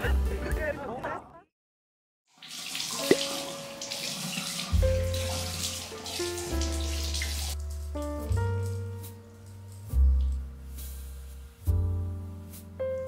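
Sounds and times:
tap running into sink: 0:02.6 - 0:07.6
keyboard and bass music: 0:04.8 - 0:05.6, 0:06.2 - 0:13.0.

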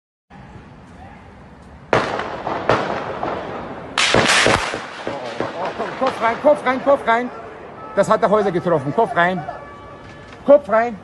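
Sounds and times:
echoing gunshots: 0:01.9 - 0:07.9.

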